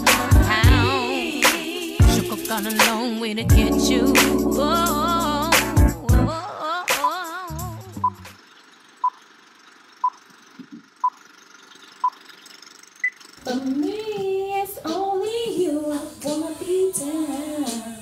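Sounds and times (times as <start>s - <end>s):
woman singing: 0.0s - 8.0s, 13.4s - 18.0s
countdown beeps: 8.0s - 8.2s.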